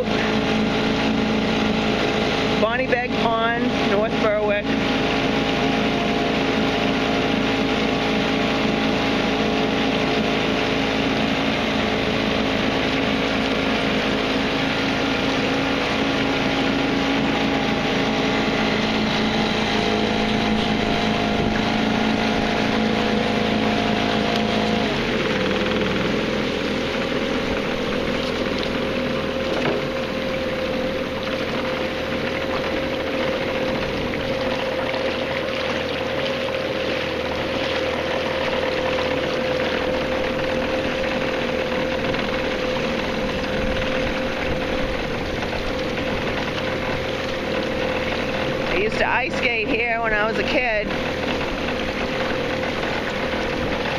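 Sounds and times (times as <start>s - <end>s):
boat motor running: 0.0s - 53.9s
water: 0.0s - 53.9s.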